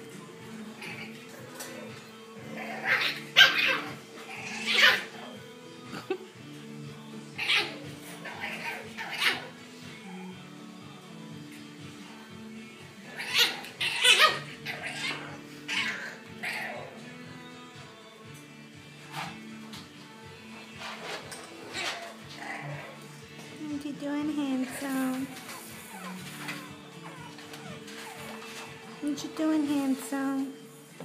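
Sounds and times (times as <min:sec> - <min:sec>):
background music with held notes: 0:00.0 - 0:31.0
puppies yipping: 0:00.8 - 0:05.4, 0:07.4 - 0:10.4, 0:13.0 - 0:17.0, 0:20.7 - 0:23.2, 0:24.8 - 0:29.0.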